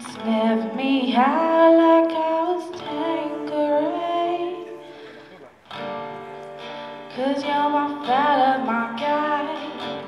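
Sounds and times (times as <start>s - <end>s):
woman singing: 0.0s - 4.9s, 6.9s - 10.0s
acoustic guitar strummed chords: 0.0s - 10.0s.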